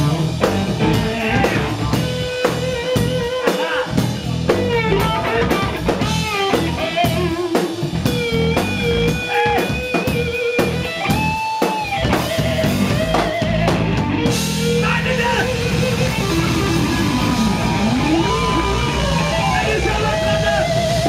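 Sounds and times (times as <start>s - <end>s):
bass guitar: 0.0s - 21.0s
drum kit beat: 0.0s - 21.0s
electric guitar lead: 0.0s - 21.0s.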